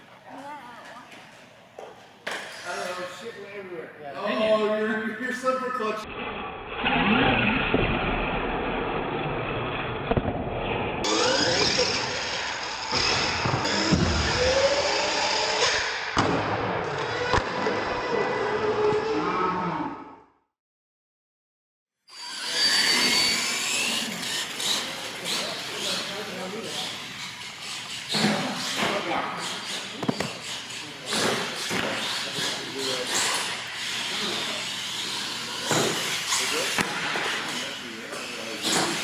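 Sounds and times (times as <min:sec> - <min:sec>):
toy truck motor whining: 0:11.0 - 0:16.0, 0:22.1 - 0:28.8, 0:29.4 - 0:36.8.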